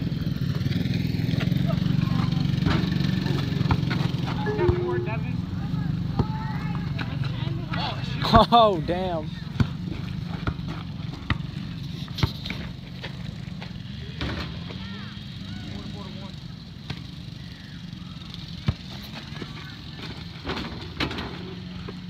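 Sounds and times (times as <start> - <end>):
small engines droning: 0.0 - 22.0.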